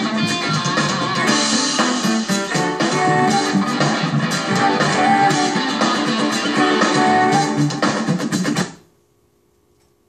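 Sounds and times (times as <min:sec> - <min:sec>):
rock band playing from television: 0:00.0 - 0:08.9.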